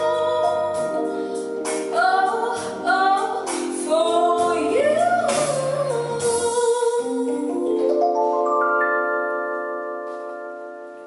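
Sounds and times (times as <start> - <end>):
electronic keyboard chord ringing: 7.6 - 11.0.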